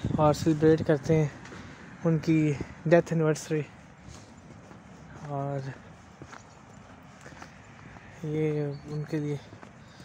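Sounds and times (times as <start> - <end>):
footsteps on snow: 0.2 - 10.0.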